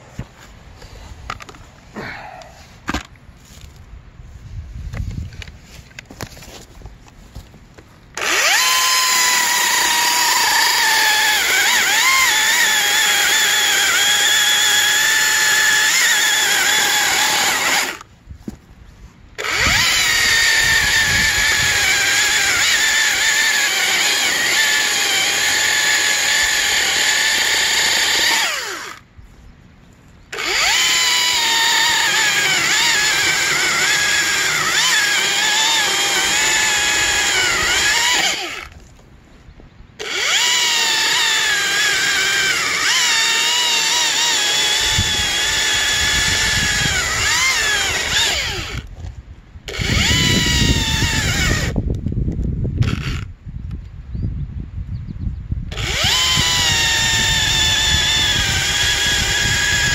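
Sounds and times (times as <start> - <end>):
electric chainsaw cutting logs: 8.2 - 18.1, 19.4 - 29.1, 30.3 - 39.0, 40.0 - 52.0, 52.8 - 53.3, 55.7 - 59.9.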